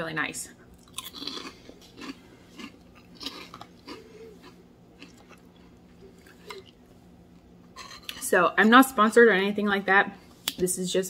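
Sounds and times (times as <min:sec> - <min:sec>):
person chewing food: 0:00.7 - 0:08.2.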